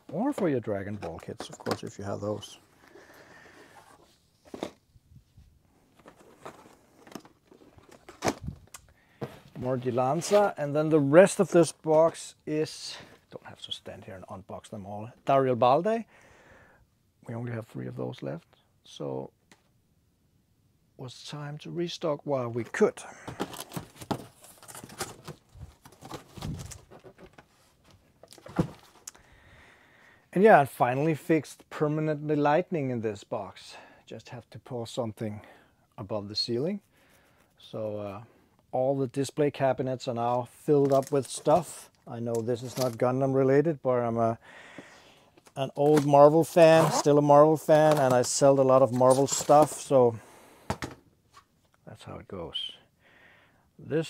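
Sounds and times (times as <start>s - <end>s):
cardboard boxes knocking and scraping: 23.3s - 27.4s, 28.3s - 29.0s.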